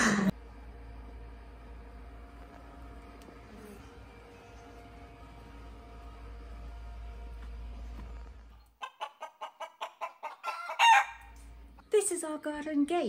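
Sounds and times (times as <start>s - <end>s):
hen cackling: 8.8s - 11.3s.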